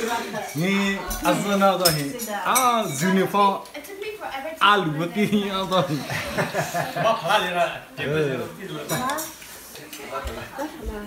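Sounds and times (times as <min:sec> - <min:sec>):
spoons clinking against bowls: 0:00.0 - 0:03.7, 0:08.8 - 0:09.5
people talking: 0:00.0 - 0:09.3.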